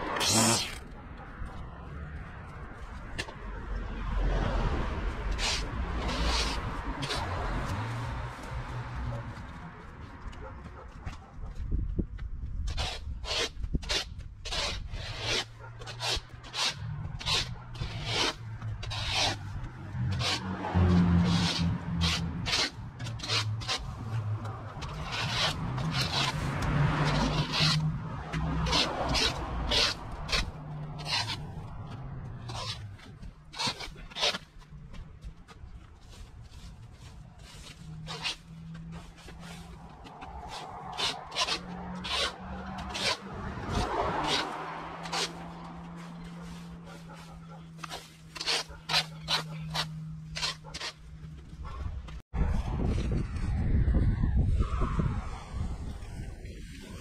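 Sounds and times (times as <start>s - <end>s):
rake scraping on path: 0.0s - 0.9s, 4.2s - 10.4s, 12.6s - 53.2s.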